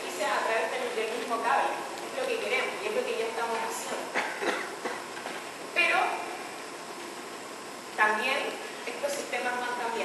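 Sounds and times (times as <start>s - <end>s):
woman speaking: 0.0s - 4.2s, 5.7s - 6.4s, 8.0s - 10.0s.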